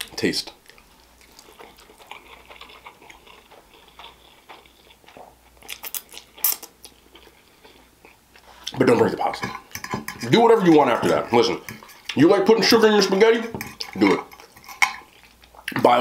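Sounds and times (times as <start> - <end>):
chewing: 0.0 - 12.3, 13.0 - 15.8
wet mouth clicks: 5.2 - 6.8.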